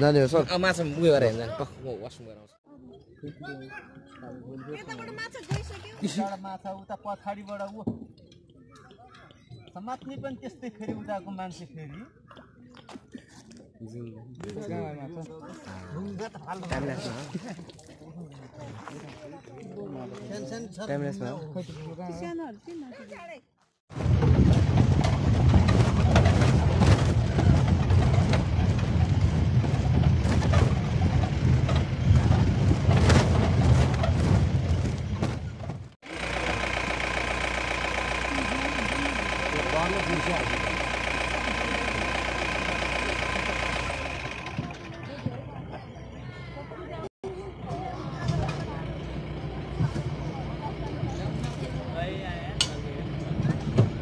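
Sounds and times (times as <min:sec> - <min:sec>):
vehicle body rattling over bumps: 0:23.9 - 0:45.7, 0:47.5 - 0:54.0
vehicle engine rumble: 0:23.9 - 0:54.0
faint voices: 0:36.1 - 0:54.0.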